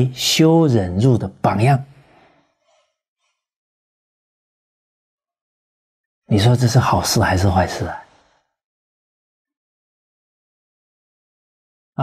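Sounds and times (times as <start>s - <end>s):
faint breath: 1.9s - 3.5s, 8.0s - 8.6s.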